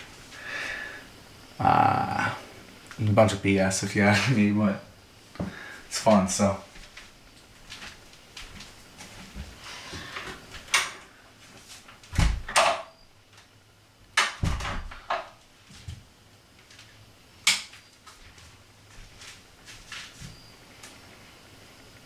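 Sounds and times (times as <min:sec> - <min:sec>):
door heavy thumps: 0:12.1 - 0:12.8, 0:14.3 - 0:15.3
door knocks and rattles: 0:14.2 - 0:15.3.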